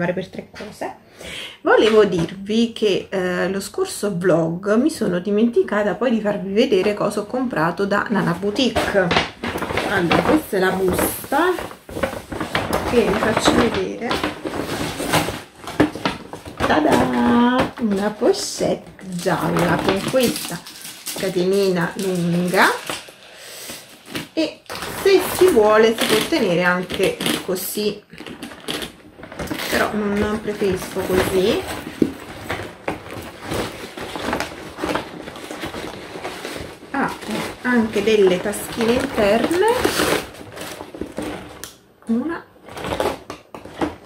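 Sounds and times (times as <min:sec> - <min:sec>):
paper bag rustling and crinkling: 0:06.5 - 0:41.7, 0:42.6 - 0:44.0.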